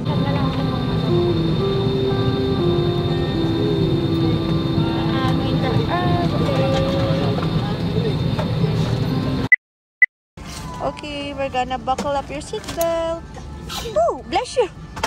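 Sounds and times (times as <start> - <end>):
faint passenger chatter: 0.0 - 9.4
airliner cabin hum: 0.0 - 9.5
slow melody of held notes: 0.3 - 7.4.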